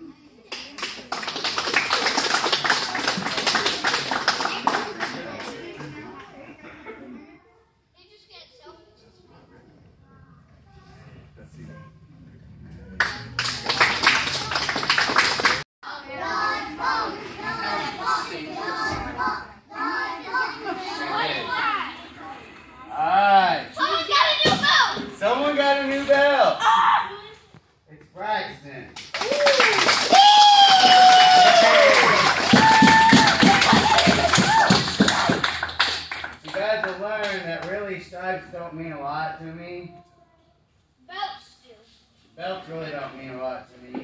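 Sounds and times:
crowd clapping: 0.5 - 5.8, 13.0 - 15.6, 29.0 - 37.8
children's voices: 15.8 - 22.9, 23.8 - 25.1
high-pitched whoops and yells: 29.2 - 34.8
long drawn-out shout: 29.2 - 34.8.

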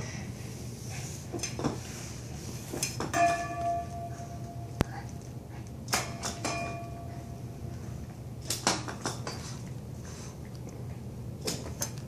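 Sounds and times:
metallic clinks ringing: 6.0 - 7.4.

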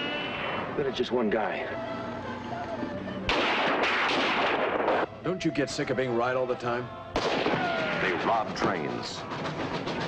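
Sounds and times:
dense barrage of gunfire: 3.3 - 5.0, 7.2 - 8.4.

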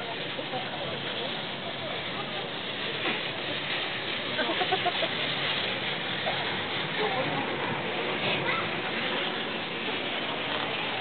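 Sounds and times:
chairlift rushing noise: 0.0 - 11.0
faint voices: 0.0 - 11.0.

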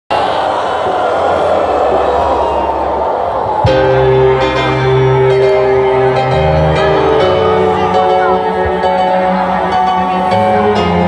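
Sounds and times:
crowd noise: 0.1 - 11.0
metal band playing: 3.6 - 11.0.

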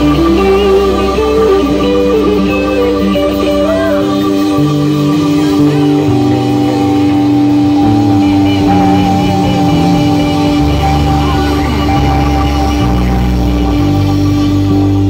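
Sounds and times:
bass line: 0.0 - 15.0
high note with vibrato: 0.0 - 15.0
live rock band playing: 0.0 - 15.0.

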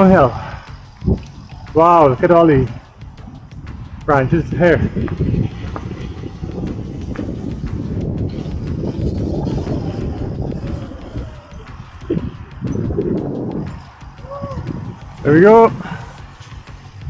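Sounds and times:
bike clicks and rattles: 0.0 - 14.3
bike tyres rolling over dirt: 0.0 - 17.0.

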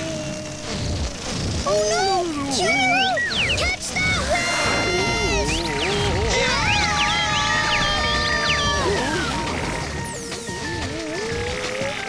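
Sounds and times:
background music: 0.0 - 12.0
cartoon balloon whistle: 1.7 - 9.4.

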